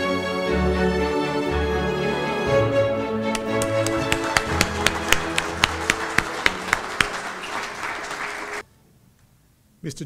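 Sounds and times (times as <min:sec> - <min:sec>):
soft instrumental music: 0:00.0 - 0:07.5
people clapping: 0:03.3 - 0:08.6.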